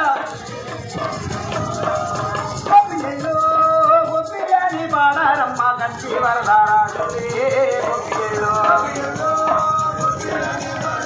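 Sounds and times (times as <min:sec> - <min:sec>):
fast rattling percussion beat: 0:00.0 - 0:11.0.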